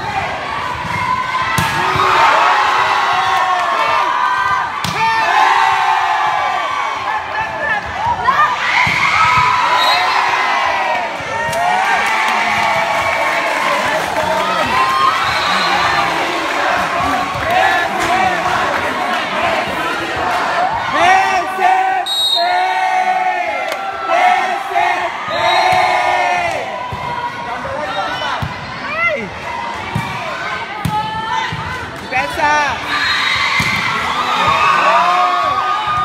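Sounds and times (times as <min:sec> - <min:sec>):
spectators cheering and shouting: 0:00.0 - 0:36.0.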